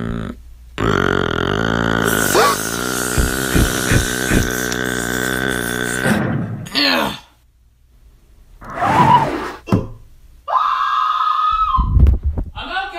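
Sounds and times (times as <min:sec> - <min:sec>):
low buzzing burp-like vocal sound: 0:00.0 - 0:07.3.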